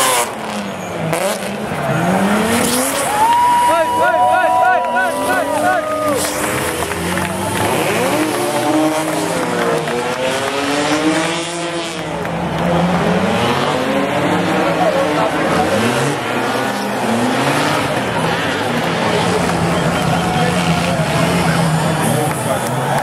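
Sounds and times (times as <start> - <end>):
car engines revving: 0.0 - 23.0.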